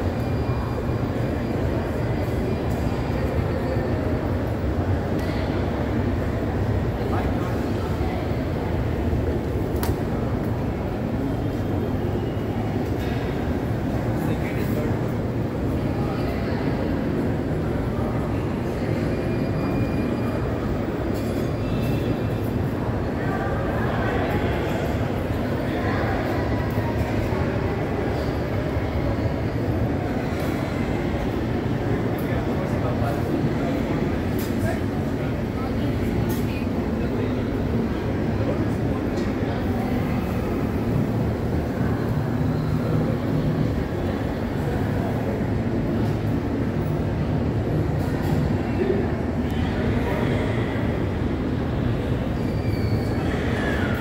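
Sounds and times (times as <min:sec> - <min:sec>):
low rumbling mall ambience: 0:00.0 - 0:54.0.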